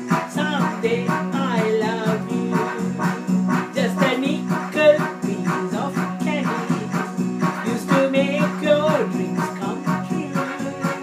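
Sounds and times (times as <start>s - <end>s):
electronic keyboard accompaniment: 0.0s - 11.0s
repeating bass pattern: 0.0s - 11.0s
woman singing: 0.1s - 11.0s.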